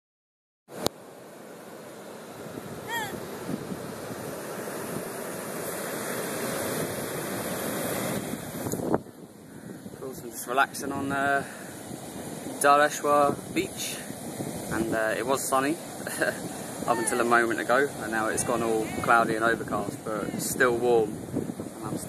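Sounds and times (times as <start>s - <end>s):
surf breaking on a beach: 0.7s - 22.0s
wind buffeting microphone: 2.3s - 22.0s.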